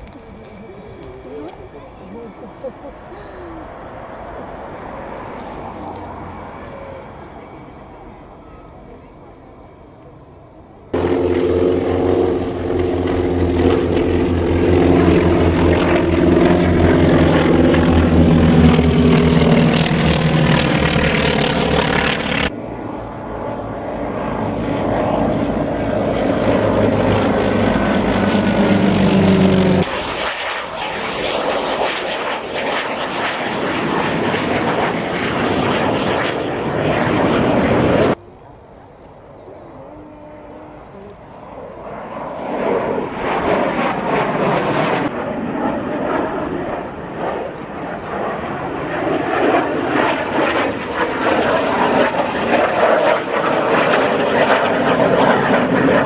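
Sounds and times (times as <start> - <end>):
rushing engine noise: 0.0 - 30.1
jet engine roar: 0.0 - 56.0
propeller planes droning overhead: 0.0 - 56.0.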